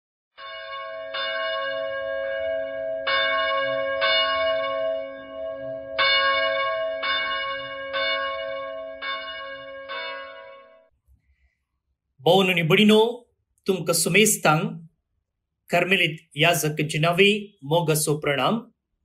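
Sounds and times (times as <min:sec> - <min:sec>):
church bell ringing: 0:00.4 - 0:10.9.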